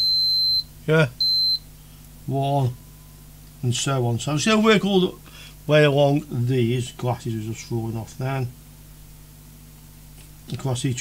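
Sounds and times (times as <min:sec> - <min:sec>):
multimeter continuity beeps: 0:00.0 - 0:01.7.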